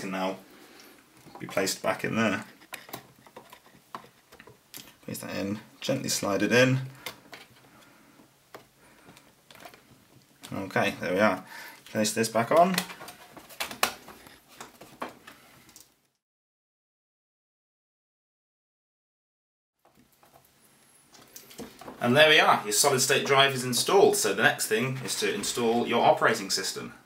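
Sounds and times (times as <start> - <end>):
plastic cover clicking and rubbing: 1.2 - 5.1, 6.9 - 10.7, 11.8 - 15.4.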